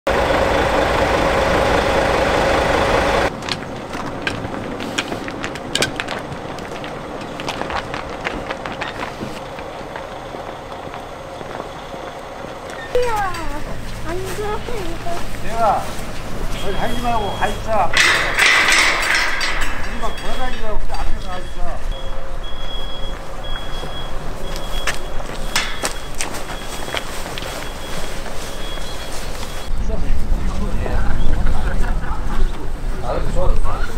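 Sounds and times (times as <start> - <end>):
bus engine idling: 0.1 - 33.9
outdoor background rumble: 0.1 - 33.9
high-pitched beep: 16.5 - 17.8, 19.9 - 20.6, 21.2 - 29.7.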